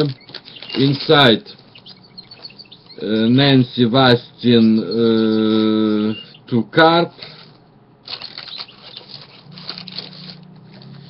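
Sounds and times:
paper rustling and scratching: 0:00.0 - 0:01.4, 0:07.2 - 0:11.0.

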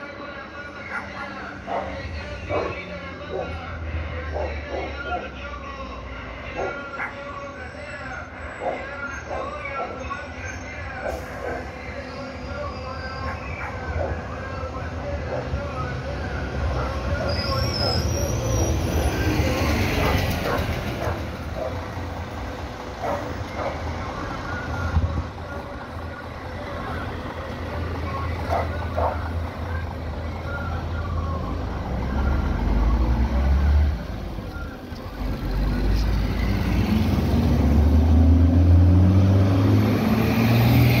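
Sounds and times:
low traffic engine rumble: 0:00.0 - 0:41.0
bus diesel engine pulling away: 0:07.6 - 0:41.0
car passing close by: 0:35.2 - 0:41.0.

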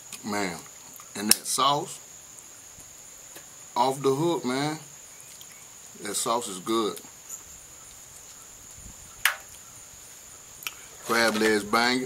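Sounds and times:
crickets trilling: 0:00.0 - 0:12.0.

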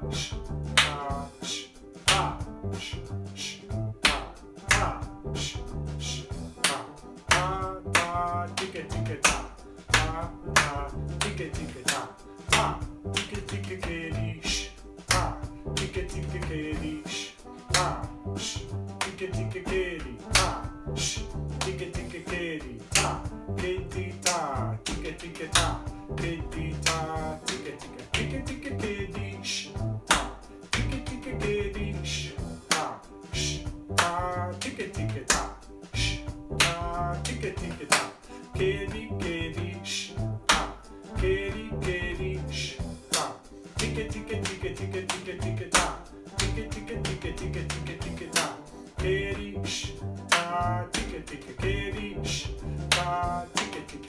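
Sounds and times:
music with drum beat: 0:00.0 - 0:54.0
body percussion pats: 0:00.1 - 0:17.0, 0:17.6 - 0:54.0
hand claps: 0:00.2 - 0:03.0, 0:04.0 - 0:17.0, 0:17.7 - 0:19.4, 0:20.0 - 0:31.6, 0:32.6 - 0:38.4, 0:40.5 - 0:40.9, 0:42.6 - 0:48.8, 0:50.2 - 0:54.0.

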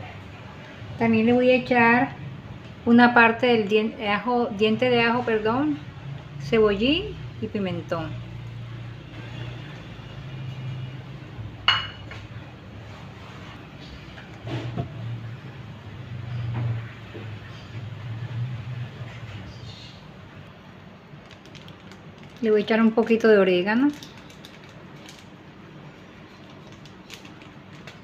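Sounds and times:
clink on a pot: 0:11.7 - 0:12.1.

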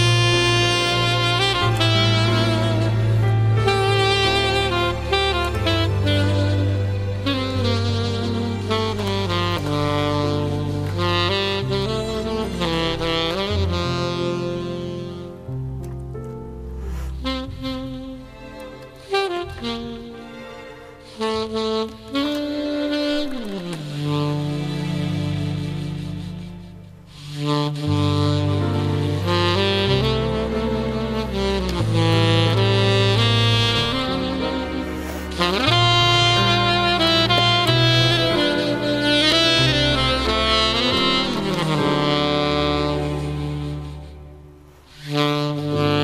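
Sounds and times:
saxophone slow melody: 0:00.0 - 0:46.0.

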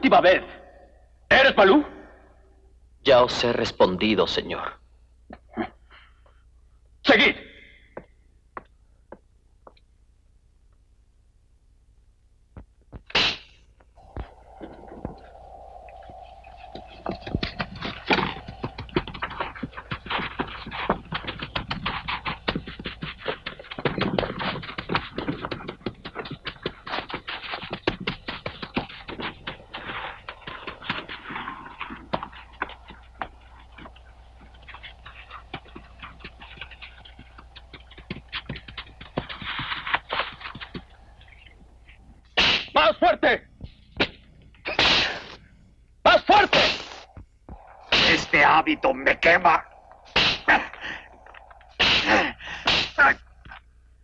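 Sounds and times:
whip cracking: 0:13.1 - 0:13.5, 0:42.4 - 0:42.8, 0:47.8 - 0:48.6, 0:50.1 - 0:50.7, 0:51.7 - 0:53.2.

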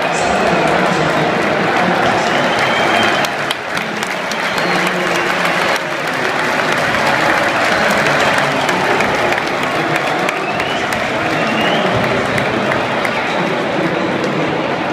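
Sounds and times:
crowd voices: 0:00.0 - 0:14.9
stadium crowd applauding: 0:00.0 - 0:14.9.

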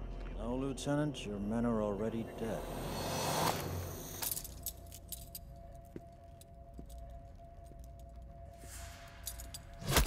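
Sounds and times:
rushing noise: 0:02.1 - 0:04.3
light metallic clinks and jangles: 0:04.1 - 0:09.8.

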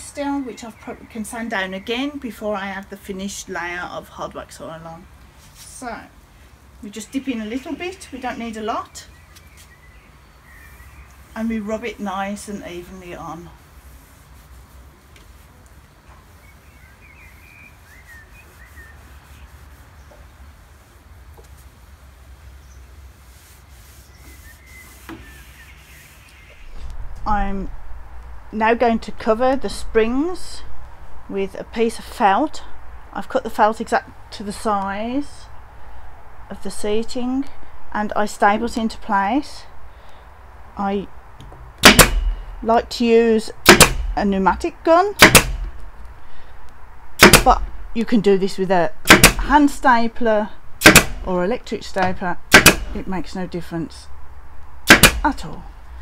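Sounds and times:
small birds chirping: 0:06.8 - 0:13.4, 0:15.6 - 0:20.8, 0:24.0 - 0:26.8
low steady rumble: 0:26.6 - 0:39.8, 0:40.4 - 0:56.0
pneumatic staple gun firing: 0:41.8 - 0:42.5, 0:43.6 - 0:44.2, 0:45.2 - 0:45.8, 0:47.2 - 0:47.5, 0:49.1 - 0:49.4, 0:50.8 - 0:51.2, 0:52.5 - 0:53.0, 0:54.9 - 0:55.3.

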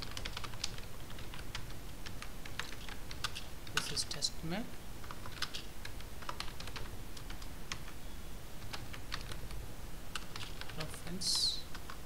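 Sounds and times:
computer keyboard key clicks: 0:05.0 - 0:07.9, 0:10.2 - 0:10.8.

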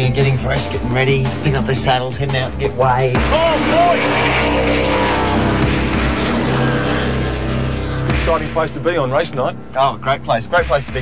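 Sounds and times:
race car engines running: 0:00.0 - 0:11.0.

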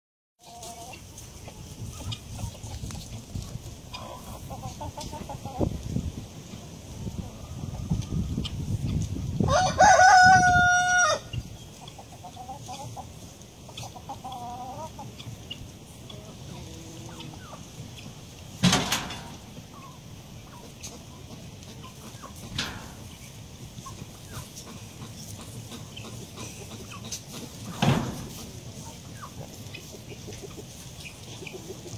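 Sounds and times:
chickens clucking: 0:00.4 - 0:31.9.

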